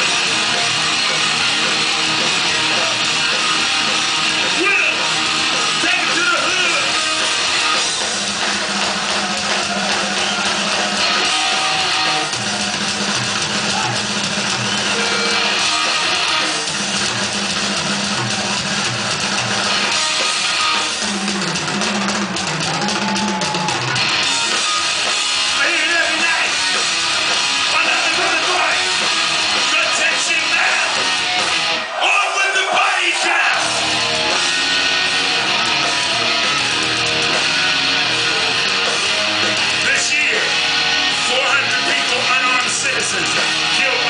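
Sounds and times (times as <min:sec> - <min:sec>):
metal band playing: 0:00.0 - 0:44.0.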